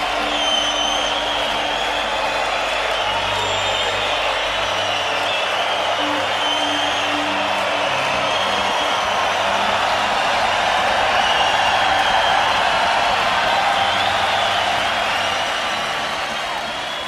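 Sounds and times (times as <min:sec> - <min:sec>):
crowd cheering and applauding: 0:00.0 - 0:17.0
crowd whistles: 0:00.0 - 0:17.0.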